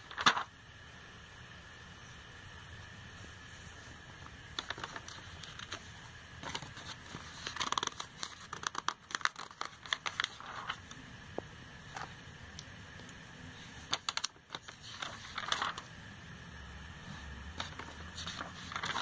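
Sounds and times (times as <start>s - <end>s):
catalogue pages being turned: 0.0s - 0.5s, 3.7s - 11.0s, 13.5s - 16.0s, 17.0s - 19.0s.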